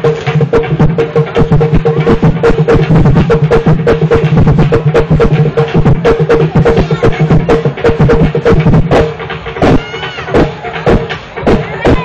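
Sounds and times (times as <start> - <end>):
drums beating dance rhythm: 0.0 - 12.0.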